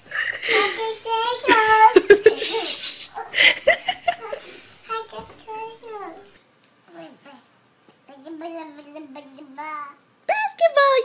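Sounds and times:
child vocalizing and giggling: 0.0s - 6.3s.

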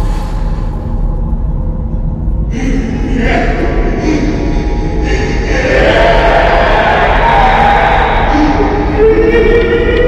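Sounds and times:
horror soundtrack music: 0.0s - 10.0s
clamour of voices: 2.5s - 10.0s.

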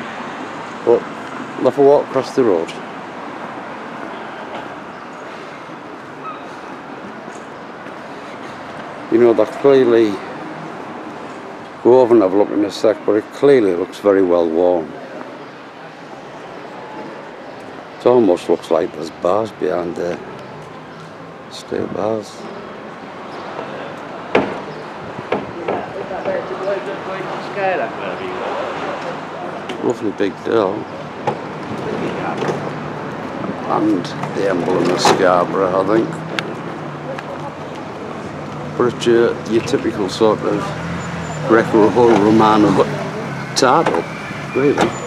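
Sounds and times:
distant traffic hiss: 0.0s - 45.0s
hard knocks: 24.3s - 24.7s.

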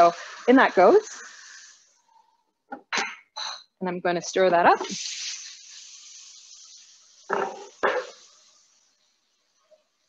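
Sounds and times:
mince sizzling in a frying pan: 0.0s - 2.1s, 3.8s - 10.0s.

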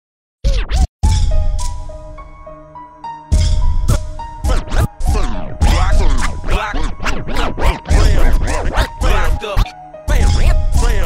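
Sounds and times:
record scratches: 0.4s - 0.9s, 3.9s - 11.0s
bass-heavy hip hop beat: 1.0s - 11.0s
held synth notes: 1.3s - 11.0s.

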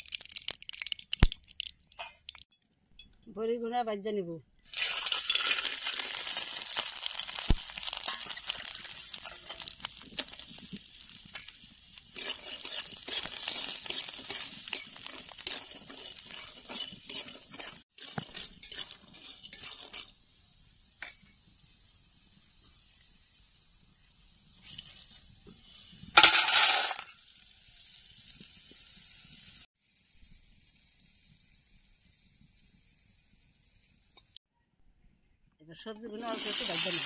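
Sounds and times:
potatoes frying: 0.0s - 2.4s, 4.6s - 34.4s, 36.0s - 37.0s
fried pieces clattering into bowl: 4.7s - 20.0s, 26.2s - 27.2s
metal spatula scraping a pan: 7.9s - 20.2s.

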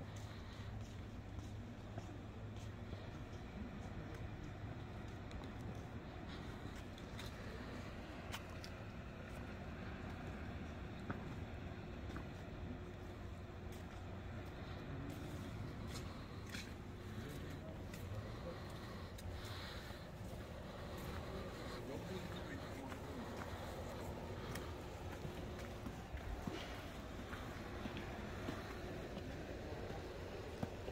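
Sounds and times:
faint indistinct voices: 0.0s - 30.9s
low outdoor rumble: 0.0s - 30.9s.

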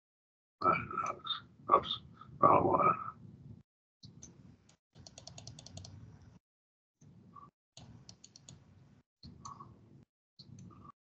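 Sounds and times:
computer keyboard typing: 5.0s - 6.0s, 7.8s - 8.6s.

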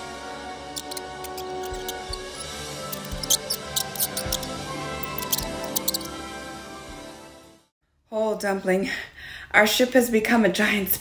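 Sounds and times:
cartoon mouse squeaks: 0.8s - 6.1s.

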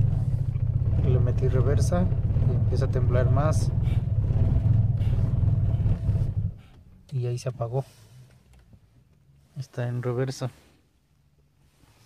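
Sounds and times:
car engine idling rough: 0.0s - 7.1s.

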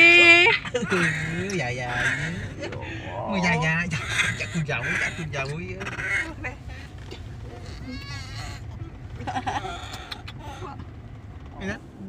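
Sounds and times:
high quavering calls: 0.0s - 11.6s
car cabin rumble: 0.0s - 12.0s.

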